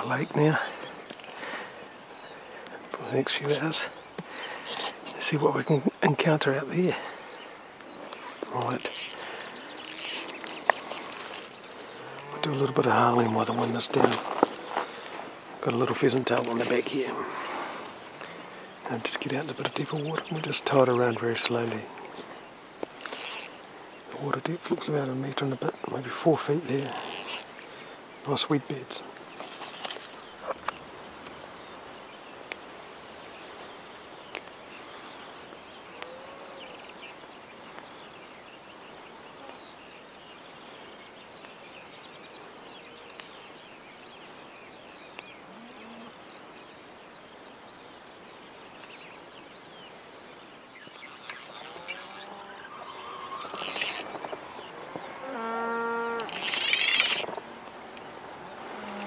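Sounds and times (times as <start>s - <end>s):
faint distant calls: 0.0s - 37.8s, 49.4s - 59.0s
fishing reel drag buzzing: 8.8s - 9.2s, 9.8s - 10.3s, 23.0s - 23.5s, 26.8s - 27.5s, 50.8s - 52.3s, 53.4s - 54.1s, 56.2s - 57.3s.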